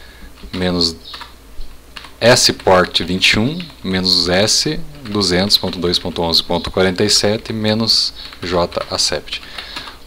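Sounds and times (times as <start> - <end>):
computer keyboard keystrokes: 1.1 - 3.9, 8.2 - 10.0
short held vocal syllable: 4.6 - 5.6.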